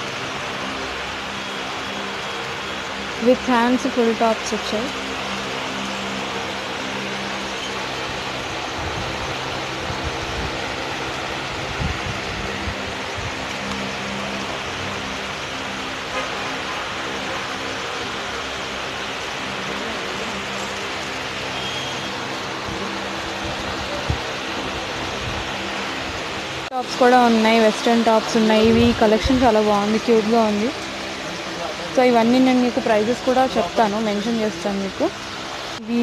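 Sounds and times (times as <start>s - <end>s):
continuous hiss: 0.0s - 36.0s.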